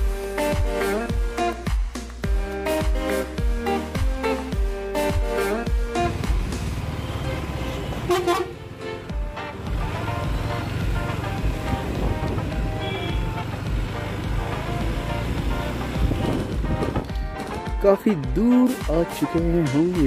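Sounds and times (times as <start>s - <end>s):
background music with beat: 0.0s - 7.6s, 8.7s - 20.0s
motorcycle engine running: 5.8s - 8.1s, 9.1s - 17.1s
vehicle horn: 7.0s - 9.1s, 12.6s - 13.5s, 15.5s - 17.0s.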